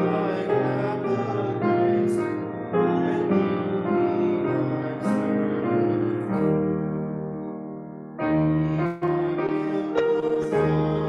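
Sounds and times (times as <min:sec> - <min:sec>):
keyboard playing hymn chords: 0:00.0 - 0:11.0.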